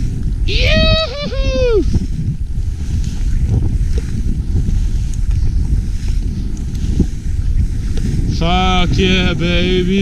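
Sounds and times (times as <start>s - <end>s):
skis rushing over snow: 0.0s - 10.0s
wind buffeting microphone: 0.0s - 10.0s.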